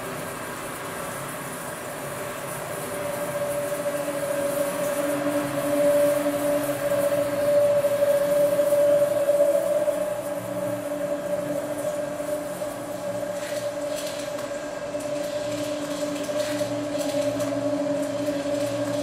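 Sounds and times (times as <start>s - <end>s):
hiss: 0.0s - 15.6s
video soundtrack drone: 2.0s - 19.0s.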